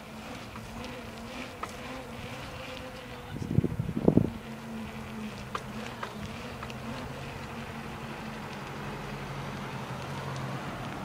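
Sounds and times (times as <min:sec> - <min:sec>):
low buzzing hum: 0:00.0 - 0:11.0
faint ticks: 0:04.4 - 0:11.0.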